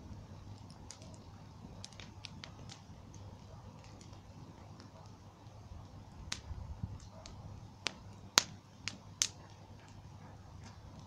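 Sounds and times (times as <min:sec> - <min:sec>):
bonfire crackling: 0:00.0 - 0:11.0
burning wood popping: 0:00.0 - 0:11.0
faint low rumble: 0:00.0 - 0:11.0.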